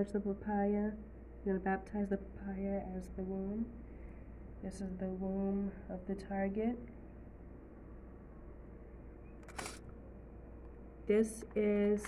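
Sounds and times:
faint low hum: 0.0s - 12.0s
sharp click-like rustle: 9.4s - 9.9s.

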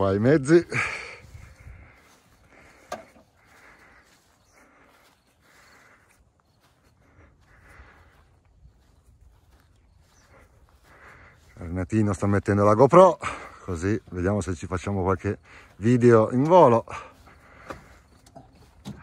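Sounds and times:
footsteps on grass: 0.0s - 19.0s.

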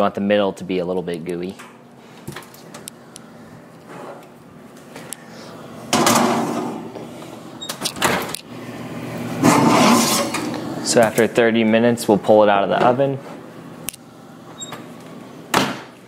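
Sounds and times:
skillet scraping and clattering: 9.4s - 10.6s.

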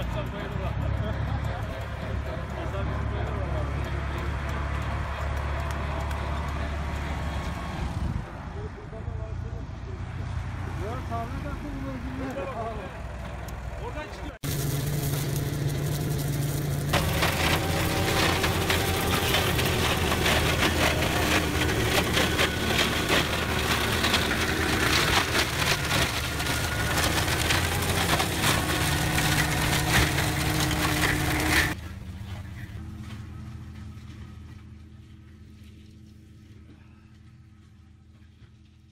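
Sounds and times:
tractor and machine drone: 0.0s - 8.0s, 12.4s - 38.9s
wood splintering in a shredder: 14.4s - 31.8s.

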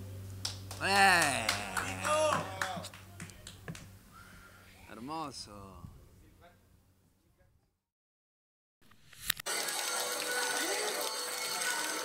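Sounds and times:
man laughing: 0.8s - 2.6s.

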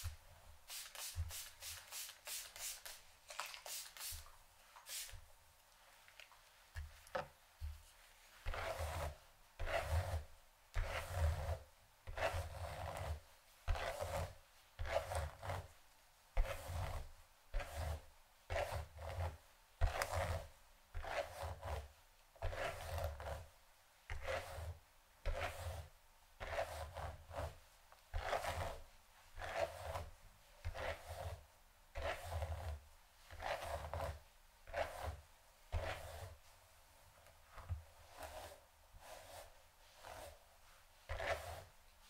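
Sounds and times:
brush swishing through hair: 0.0s - 5.3s, 35.8s - 36.6s, 37.5s - 41.7s.

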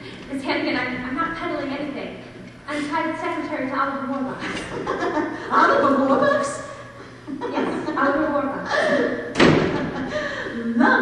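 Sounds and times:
loud thud: 9.3s - 10.1s.

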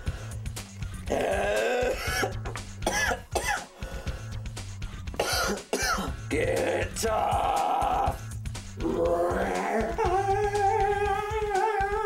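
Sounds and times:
background music with bass line: 0.0s - 12.0s
voice making wordless sounds: 0.9s - 2.4s, 6.1s - 12.0s.

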